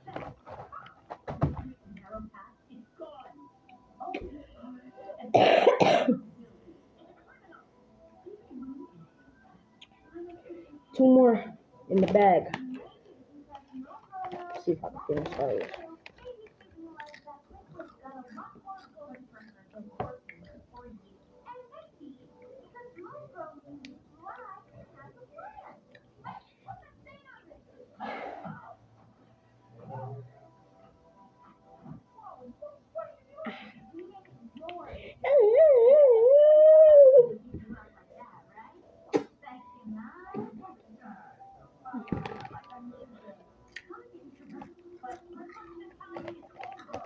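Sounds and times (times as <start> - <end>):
faint voices: 0.0 - 47.0
crunchy chips being chewed: 15.2 - 20.9, 45.0 - 47.0
howl-like voice: 35.2 - 37.4.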